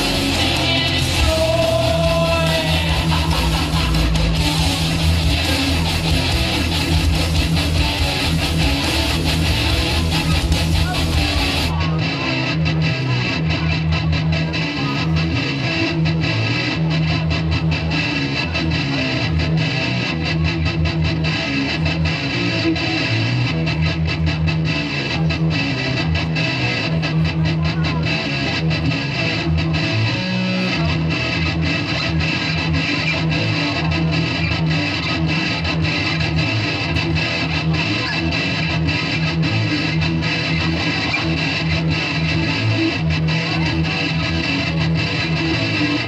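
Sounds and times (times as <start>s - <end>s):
electric guitar through amplifier: 0.0s - 46.0s.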